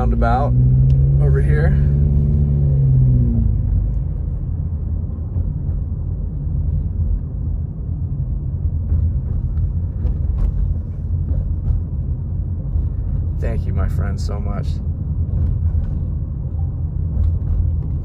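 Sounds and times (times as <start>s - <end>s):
car engine and tyres rumbling: 0.0s - 18.0s
engine hum: 0.0s - 18.0s.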